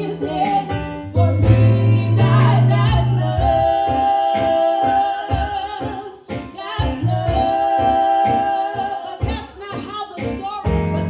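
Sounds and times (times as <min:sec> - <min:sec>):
steady low beat: 0:00.0 - 0:04.1, 0:10.7 - 0:11.0
keyboard accompaniment: 0:00.0 - 0:11.0
women singing into microphones: 0:00.0 - 0:11.0.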